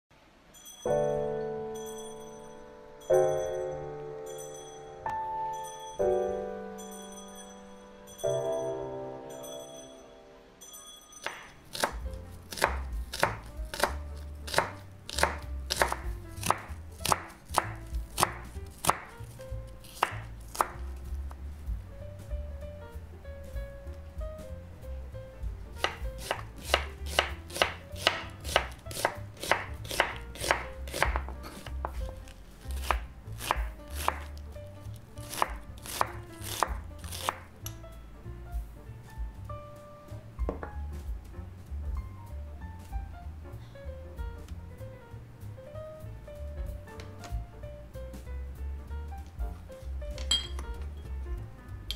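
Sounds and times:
knife chopping on wooden board: 11.2 - 21.4, 25.8 - 37.8
knife knocking on cutting board: 25.8 - 32.2, 40.4 - 40.9.

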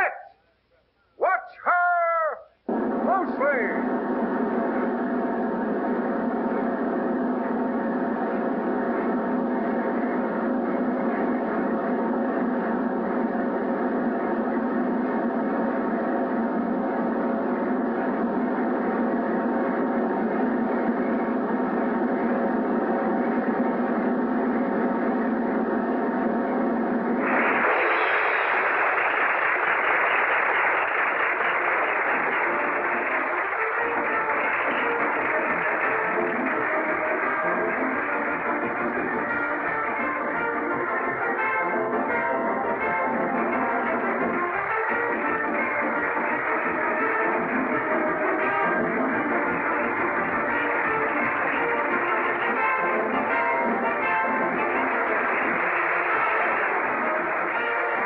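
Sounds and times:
crowd applause: 1.2 - 23.7, 27.0 - 58.0
snare drum roll: 2.3 - 58.0.

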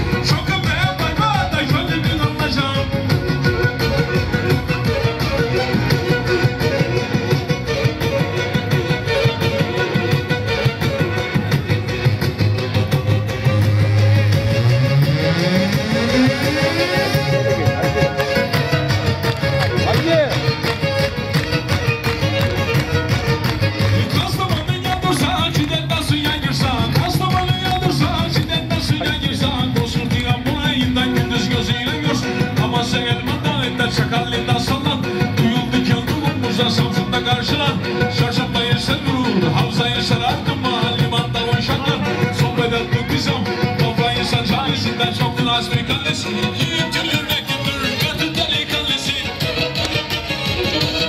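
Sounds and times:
amplified folk dance music: 0.0 - 51.0.

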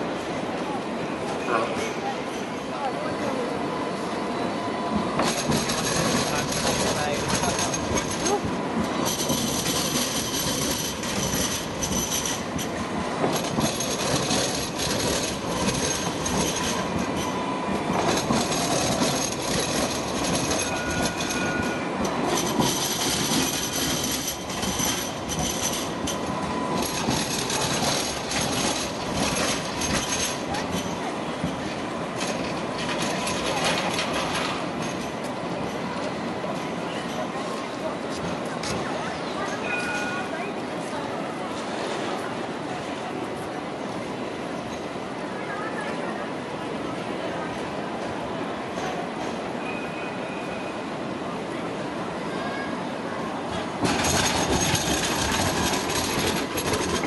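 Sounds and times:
trams rolling on track: 0.0 - 57.0.

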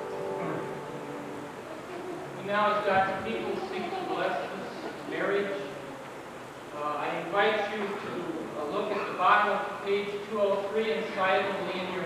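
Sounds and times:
man speaking: 2.4 - 5.8, 6.7 - 12.0.

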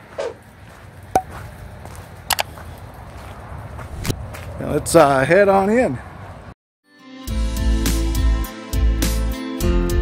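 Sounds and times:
footstep scuffs: 0.0 - 4.6
footsteps on wet gravel: 0.0 - 5.1.

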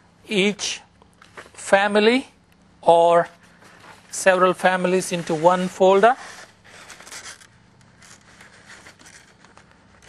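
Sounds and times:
paper rustling and sliding: 3.5 - 10.0.

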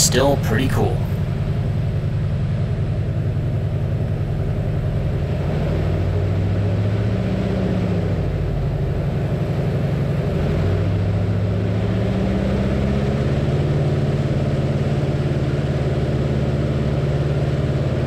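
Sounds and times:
radial aircraft engine running hard: 0.0 - 18.0.

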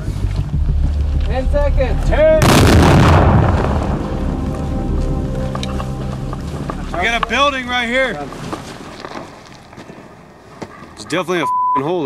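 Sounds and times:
noisy rumble: 0.0 - 10.6.

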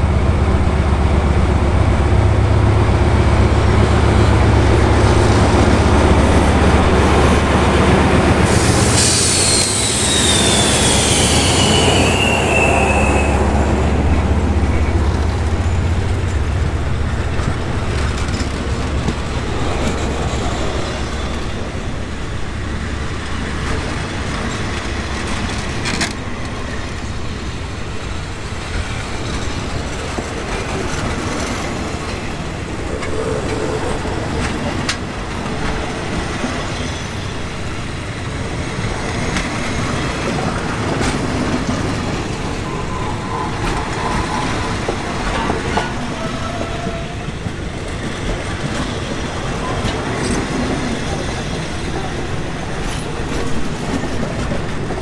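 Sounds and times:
locomotive engine humming: 0.0 - 55.0
train coaches rolling on rails: 0.0 - 55.0
squeal falling in pitch: 9.3 - 13.5.

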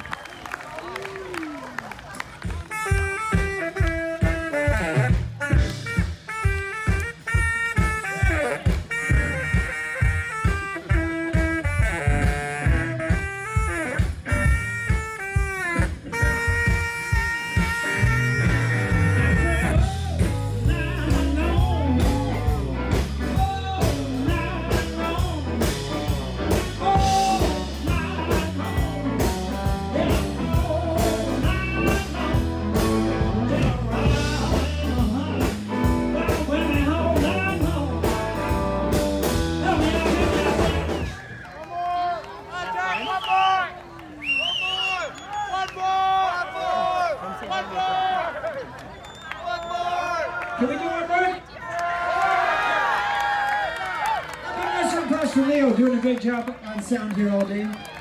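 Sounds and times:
bass and drums: 2.2 - 41.3
electric guitar with bent notes: 2.4 - 41.2
saxophone melody: 2.4 - 41.2.

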